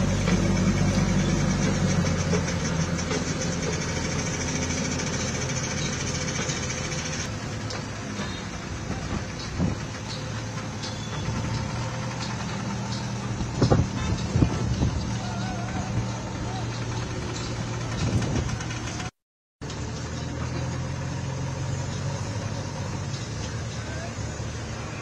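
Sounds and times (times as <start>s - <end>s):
diesel engines running: 0.0s - 25.0s.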